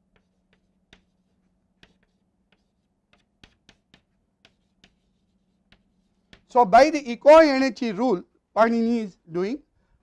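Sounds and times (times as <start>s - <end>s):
chalk tapping on chalkboard: 0.0s - 6.6s.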